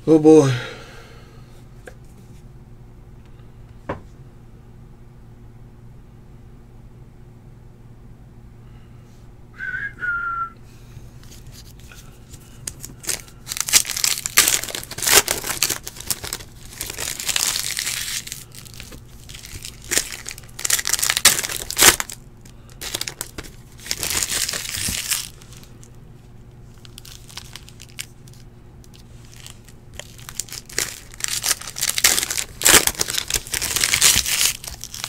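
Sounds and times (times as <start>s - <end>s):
foil wrapper crinkling and tearing: 11.2s - 26.0s, 26.6s - 35.0s.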